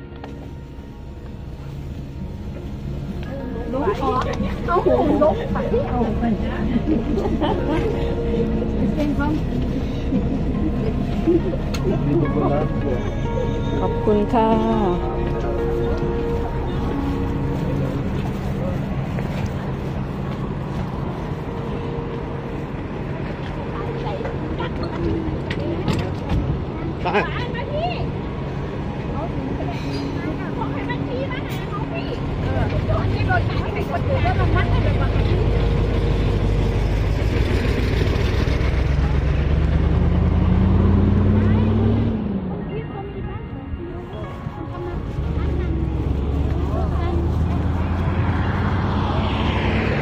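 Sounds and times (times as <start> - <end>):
bus engine running: 0.0 - 50.0
people talking: 3.3 - 20.5, 23.2 - 28.2, 29.0 - 36.7, 41.4 - 48.8.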